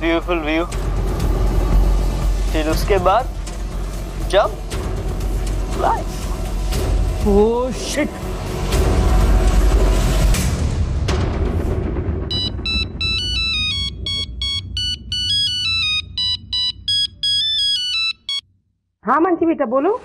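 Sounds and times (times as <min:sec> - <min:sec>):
dramatic music with deep rumble: 0:00.0 - 0:17.1
mobile phone ringtone: 0:12.3 - 0:18.4.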